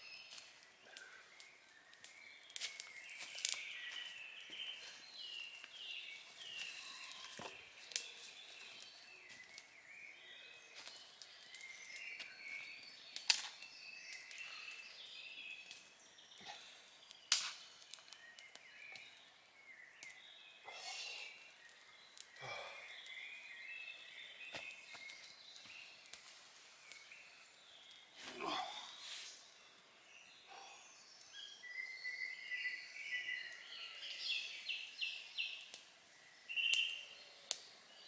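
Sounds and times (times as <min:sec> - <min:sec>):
woodland birds singing: 0:00.0 - 0:38.0
sharp cracks: 0:13.2 - 0:13.6, 0:17.3 - 0:18.2.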